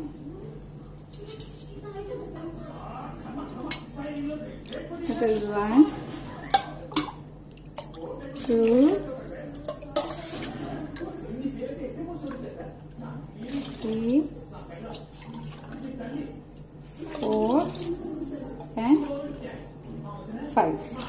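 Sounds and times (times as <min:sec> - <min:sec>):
woman speaking: 0:00.0 - 0:03.0, 0:05.0 - 0:06.1, 0:08.4 - 0:09.2, 0:13.4 - 0:14.4, 0:17.0 - 0:21.0.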